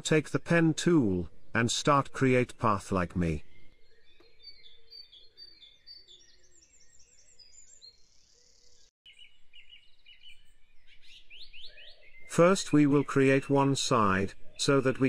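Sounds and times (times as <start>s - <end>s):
birds chirping and trilling: 0.1s - 15.0s.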